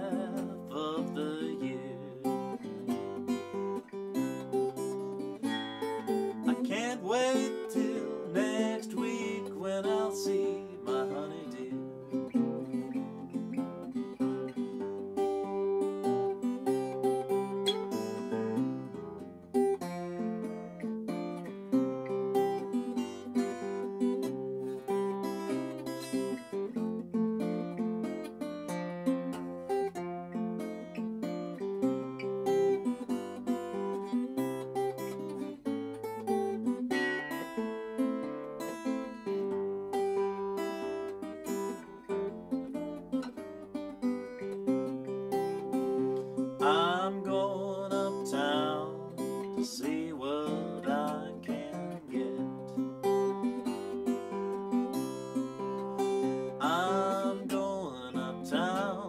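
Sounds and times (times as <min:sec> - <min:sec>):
acoustic guitar fingerpicking blues: 0:00.0 - 0:59.0.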